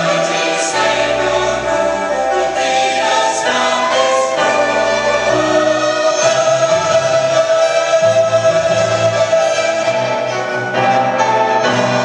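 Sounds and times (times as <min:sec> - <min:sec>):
choir singing sustained chords: 0:00.0 - 0:12.0
orchestral accompaniment: 0:00.0 - 0:12.0.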